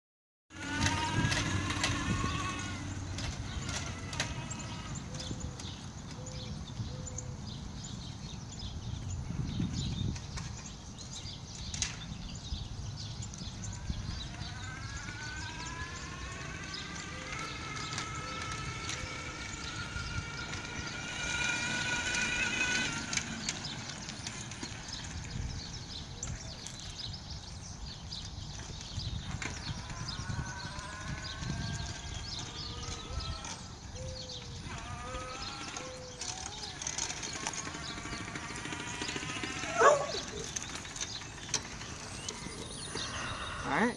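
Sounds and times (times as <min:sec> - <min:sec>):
electric motor whining: 0:00.5 - 0:06.3, 0:11.6 - 0:43.9.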